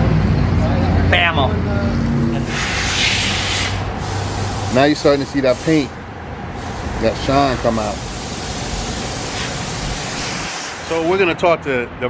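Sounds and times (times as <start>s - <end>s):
steady rushing noise: 0.6s - 12.0s
person speaking: 4.4s - 6.0s, 6.6s - 8.2s.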